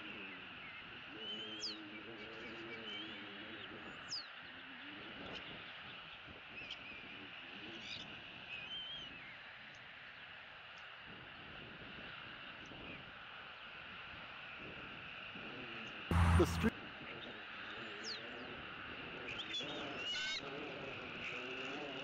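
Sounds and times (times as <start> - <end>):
birds chirping: 16.1 - 16.7.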